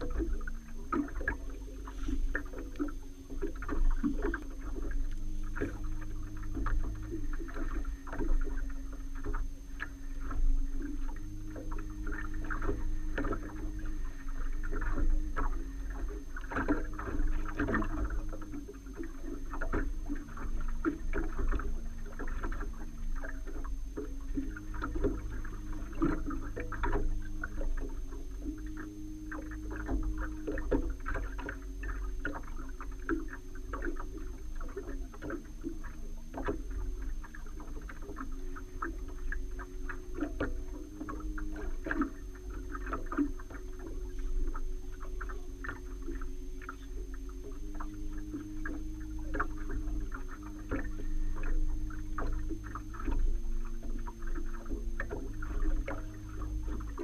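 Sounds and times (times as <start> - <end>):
low motor hum: 0.0 - 57.0
water slapping against hull: 0.0 - 57.0
wind rumble on microphone: 0.0 - 57.0.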